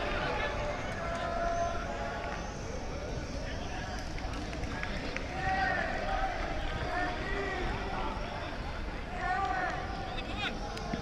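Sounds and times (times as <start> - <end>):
steady low background noise: 0.0 - 11.0
voices: 0.0 - 11.0.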